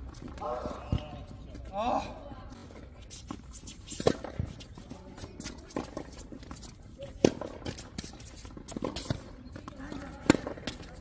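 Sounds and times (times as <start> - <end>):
racket hitting tennis ball: 3.8 - 4.6, 5.4 - 9.3, 9.9 - 10.9
tennis ball bounces: 5.2 - 11.0.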